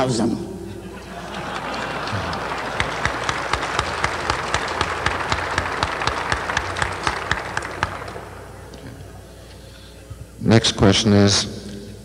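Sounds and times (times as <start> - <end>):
audience applauding: 0.9 - 9.3.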